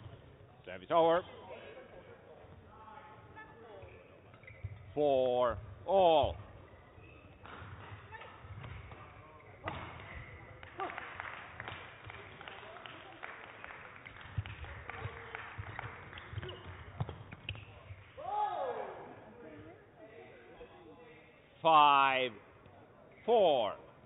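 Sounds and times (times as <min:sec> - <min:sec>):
low background murmur: 0:00.0 - 0:21.7.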